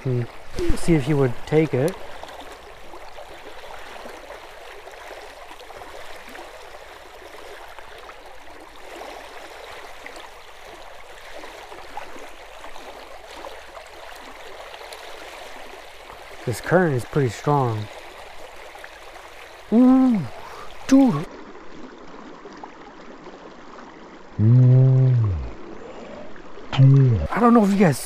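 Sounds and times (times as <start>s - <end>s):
water rushing over rocks: 0.0s - 21.4s, 24.2s - 28.0s.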